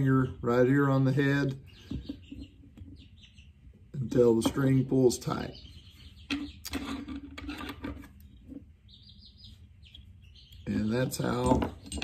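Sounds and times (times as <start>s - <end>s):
baby chicks peeping: 0.0s - 12.0s.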